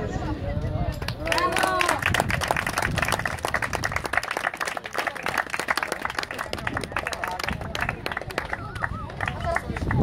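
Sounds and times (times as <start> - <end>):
people applauding: 1.1 - 10.0.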